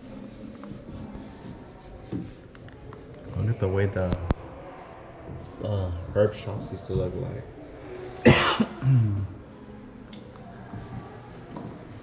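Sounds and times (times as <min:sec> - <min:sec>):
person coughing: 0:08.2 - 0:09.2
throat clearing: 0:08.2 - 0:09.3.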